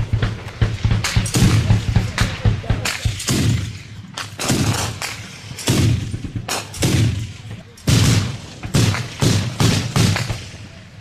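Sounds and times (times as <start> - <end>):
small-arms gunfire: 0.1 - 10.8.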